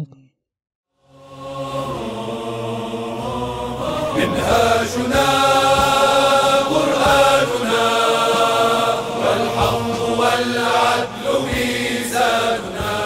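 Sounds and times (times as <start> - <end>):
vocal chant in long held notes: 1.0 - 13.0.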